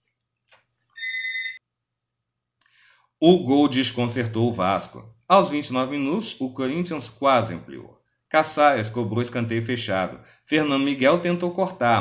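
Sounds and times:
electronic beep: 1.0 - 1.6.

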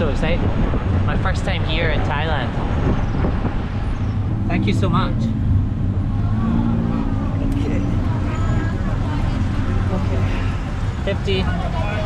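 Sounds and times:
auto rickshaw engine rumble: 0.0 - 12.0
street traffic: 0.0 - 12.0.

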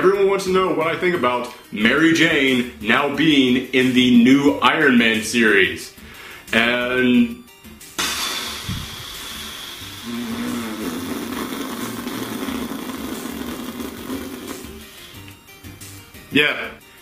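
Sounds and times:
buzzing lip trill: 8.0 - 15.2
man blowing air through lips: 8.0 - 15.3.

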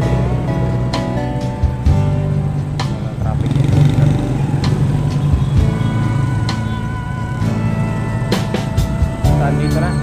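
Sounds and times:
music playing: 0.0 - 10.0
motorcycle engine idling: 2.8 - 9.2.

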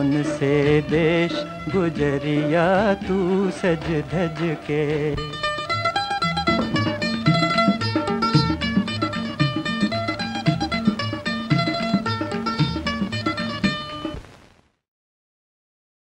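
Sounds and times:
plucked strings: 0.0 - 14.2
steady drum beat: 0.6 - 13.8.

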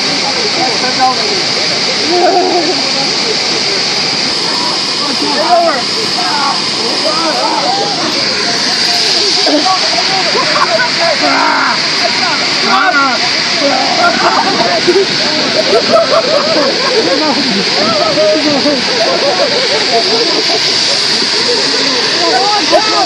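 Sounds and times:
people's voices: 0.0 - 23.0.

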